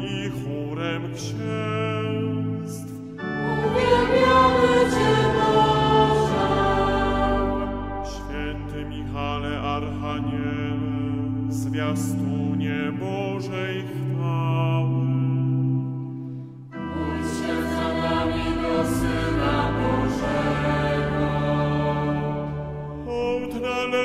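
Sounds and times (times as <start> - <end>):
choir singing sustained chords: 0.0 - 24.0.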